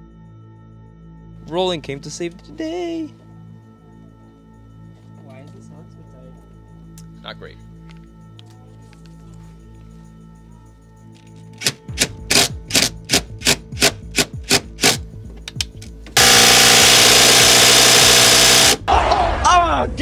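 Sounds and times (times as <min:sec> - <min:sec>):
impact wrench hammering: 0:11.6 - 0:15.0, 0:16.2 - 0:18.9.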